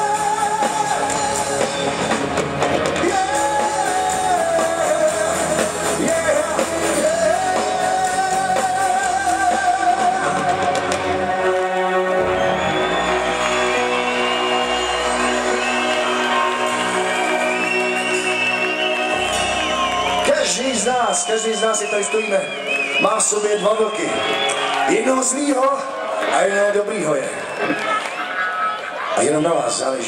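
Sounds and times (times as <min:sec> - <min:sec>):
person singing: 0:00.0 - 0:01.8, 0:03.0 - 0:12.3
rock band playing live: 0:00.0 - 0:25.4.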